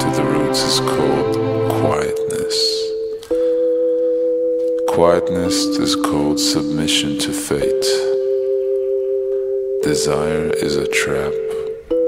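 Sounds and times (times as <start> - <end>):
person speaking: 0.0 - 3.0, 4.8 - 8.2, 9.8 - 11.9
ambient music drone: 0.0 - 12.0.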